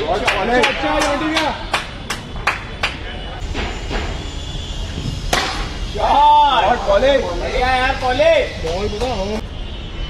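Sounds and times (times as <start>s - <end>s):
sharp crack: 5.2s - 5.8s.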